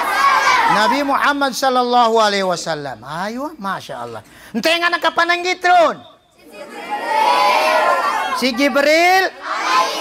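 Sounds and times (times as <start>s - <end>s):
boys shouting together: 0.0s - 1.1s, 6.4s - 10.0s.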